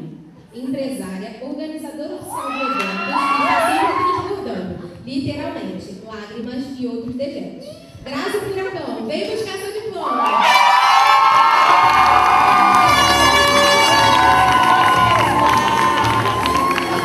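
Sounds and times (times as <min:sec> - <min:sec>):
audience cheering and screaming: 0:02.3 - 0:04.3, 0:10.0 - 0:17.0.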